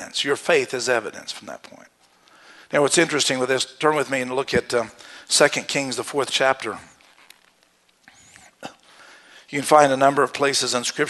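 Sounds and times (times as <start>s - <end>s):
pages being turned: 6.8s - 8.4s.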